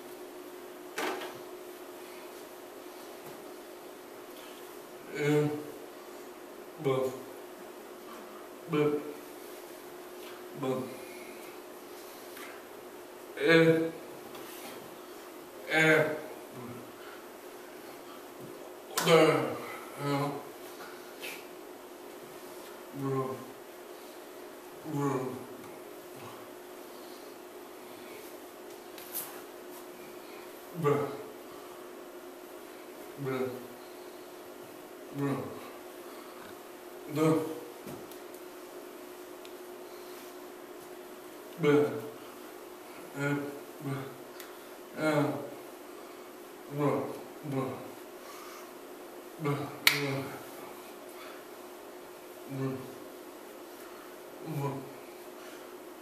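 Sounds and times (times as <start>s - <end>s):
faint steady hum: 0.0s - 56.0s
wordless voice sounds: 5.0s - 5.8s, 6.8s - 7.3s, 8.6s - 9.5s, 10.5s - 11.2s, 13.3s - 14.8s, 15.6s - 17.0s, 18.9s - 20.6s, 22.9s - 23.6s, 24.8s - 26.4s, 30.6s - 31.4s, 33.1s - 33.8s, 35.1s - 35.8s, 37.1s - 38.0s, 41.5s - 42.2s, 43.1s - 44.3s, 44.9s - 45.6s, 46.7s - 48.0s, 49.4s - 50.8s, 52.4s - 53.0s, 54.4s - 55.0s
man humming: 5.1s - 5.8s, 8.7s - 9.2s, 15.6s - 16.9s, 18.9s - 20.5s, 23.0s - 23.5s, 24.8s - 25.6s, 30.7s - 31.4s, 33.2s - 33.7s, 35.1s - 35.7s, 37.1s - 37.7s, 43.1s - 44.2s, 45.0s - 45.6s, 46.7s - 48.0s, 49.4s - 50.5s, 52.5s - 53.0s, 54.4s - 55.0s
hand snap: 49.8s - 50.2s.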